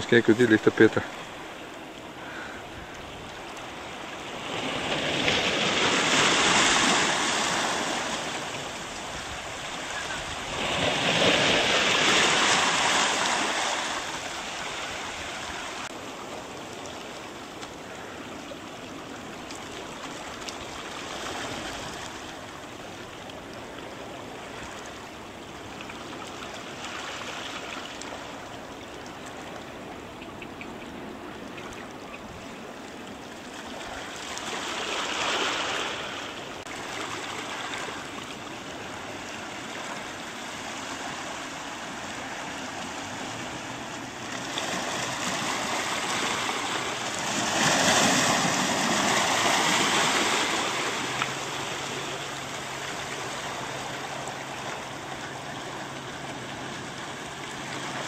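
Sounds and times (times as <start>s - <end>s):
small waves over stony shore: 0.0s - 58.0s.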